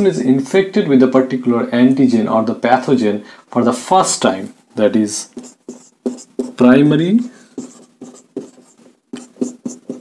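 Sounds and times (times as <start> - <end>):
marker squeaking on whiteboard: 5.2 - 10.0.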